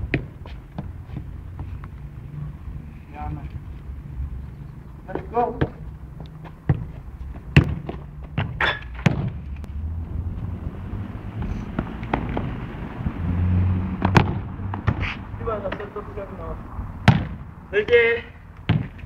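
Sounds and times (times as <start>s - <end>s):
boot kicking football: 5.1s - 9.4s, 17.0s - 17.4s, 18.7s - 19.0s.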